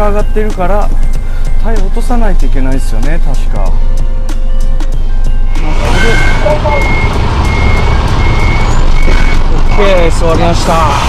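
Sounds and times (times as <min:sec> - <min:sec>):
truck engine: 0:00.0 - 0:11.0
reversing alarm beeping: 0:00.7 - 0:02.6, 0:03.6 - 0:11.0.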